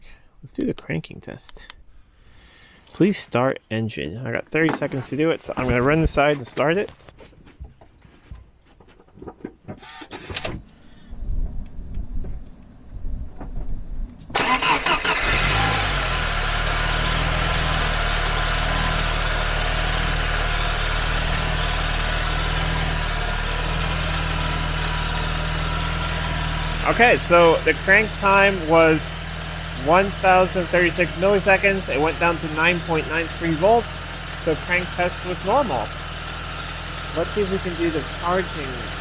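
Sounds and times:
starter cranking engine: 9.8s - 10.5s, 14.3s - 32.7s
car engine idling: 14.3s - 39.0s.

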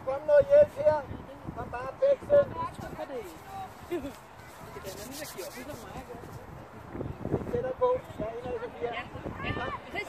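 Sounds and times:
distant people talking and calling: 0.0s - 10.0s.

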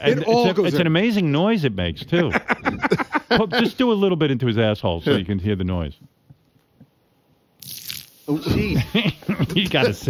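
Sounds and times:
champagne pouring hiss: 7.6s - 9.2s.

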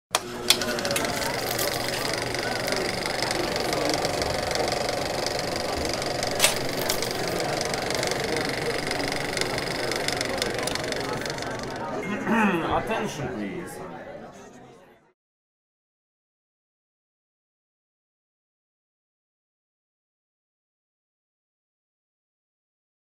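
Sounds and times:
sharp clicks: 0.1s - 11.9s
film projector clattering: 0.1s - 12.1s.

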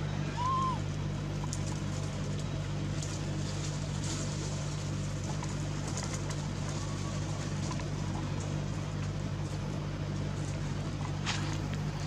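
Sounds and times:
bird calling: 0.0s - 0.9s
steady low hum: 0.0s - 12.0s.

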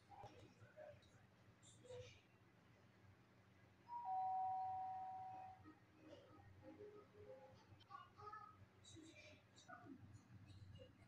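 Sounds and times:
two-note doorbell chime: 3.9s - 5.4s.

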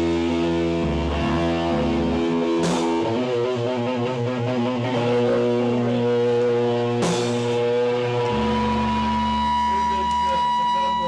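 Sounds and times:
bass guitar sustained notes: 0.0s - 11.0s
electric guitar ringing chords: 0.0s - 11.0s.

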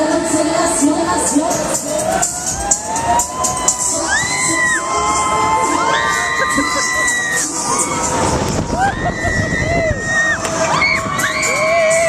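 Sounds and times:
fairground music: 0.0s - 12.0s
riders screaming: 2.3s - 8.1s.

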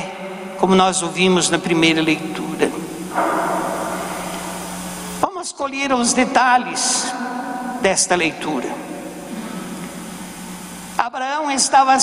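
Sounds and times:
echo of spoken words: 0.0s - 4.4s, 5.2s - 10.0s, 11.0s - 12.0s
church interior hum and hiss: 0.0s - 12.0s.

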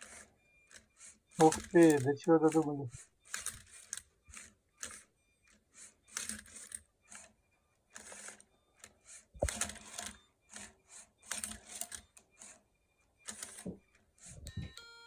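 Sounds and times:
robot motors scraping clicks: 3.3s - 7.3s.

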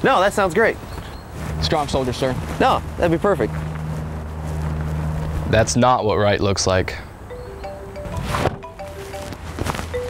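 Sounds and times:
mobile phone ringtone: 7.2s - 10.0s.

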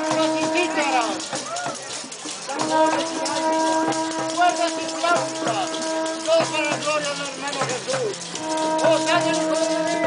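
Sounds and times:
folk music drone: 0.0s - 10.0s
hand drum beating: 0.0s - 10.0s
man chanting loudly: 8.6s - 10.0s.

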